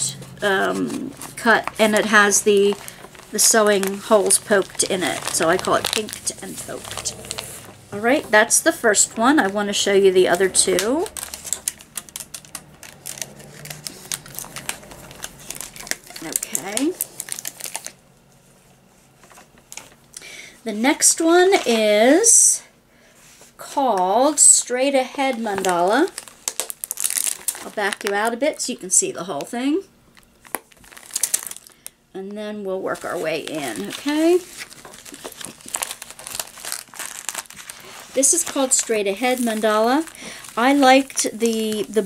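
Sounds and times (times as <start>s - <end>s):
plastic sleeve crinkling: 0.0s - 20.2s, 24.2s - 29.5s, 30.1s - 32.0s, 32.6s - 42.0s.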